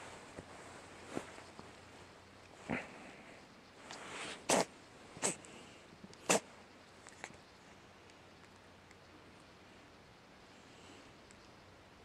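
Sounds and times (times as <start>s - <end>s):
cat sneezing: 4.3s - 5.4s, 6.2s - 6.5s.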